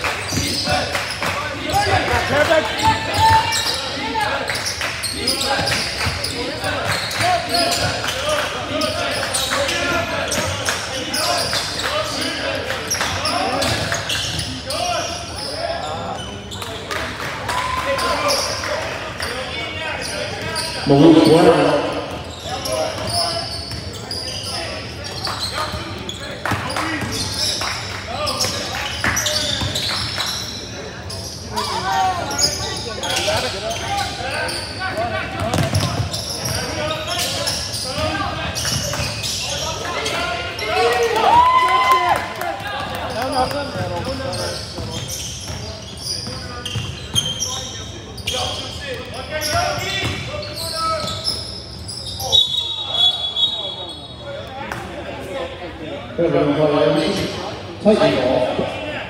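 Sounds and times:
sneakers squeaking: 0.0 - 41.2, 42.7 - 55.0, 56.9 - 58.8.

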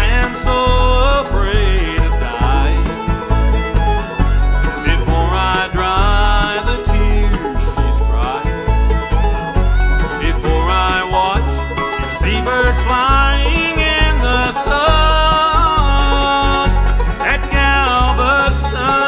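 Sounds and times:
acoustic guitar: 0.0 - 19.0
banjo picking: 0.0 - 19.0
fiddle sliding notes: 0.0 - 19.0
upright bass: 0.0 - 19.0.

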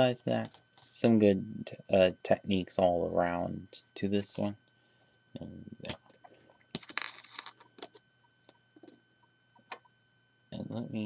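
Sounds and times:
plastic pieces rustling: 6.8 - 7.7.

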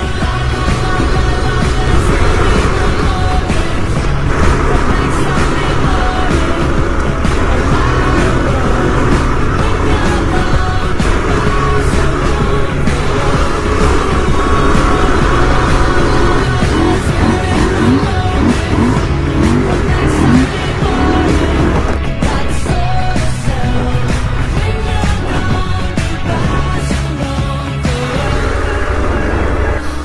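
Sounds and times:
background music: 0.0 - 30.0
motorcycle engine running: 0.0 - 30.0.

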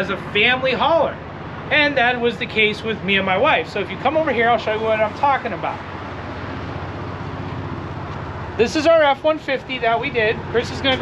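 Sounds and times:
low outdoor rumble with flutter: 0.0 - 11.0.

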